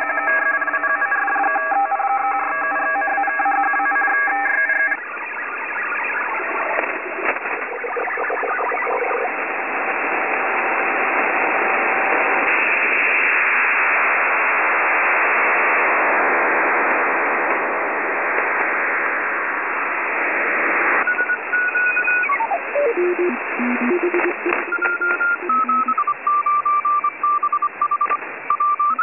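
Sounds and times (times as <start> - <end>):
radio static hiss: 4.9 - 29.0
short electronic beeps: 21.0 - 29.0.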